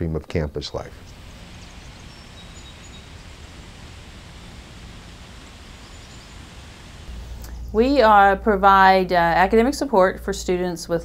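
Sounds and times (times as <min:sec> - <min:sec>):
outdoor background hiss: 0:00.0 - 0:10.8
faint high chirps: 0:01.0 - 0:07.7.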